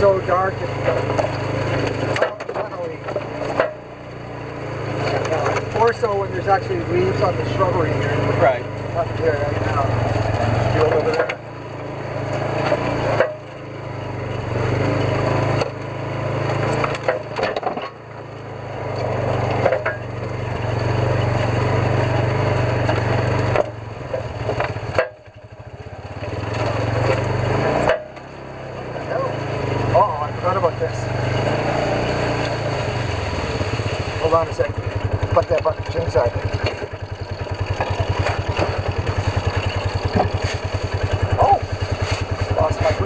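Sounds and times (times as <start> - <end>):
off-road vehicle engine revving: 0.0 - 43.0.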